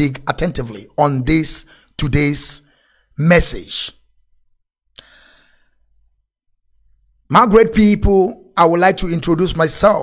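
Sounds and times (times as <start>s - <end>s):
man exhaling into microphone: 5.0s - 5.8s.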